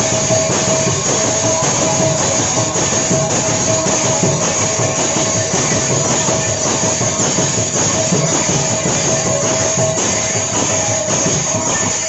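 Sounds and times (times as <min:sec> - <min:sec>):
barrel drum beating: 0:00.0 - 0:12.0
brass hand cymbals clashing: 0:00.0 - 0:12.0.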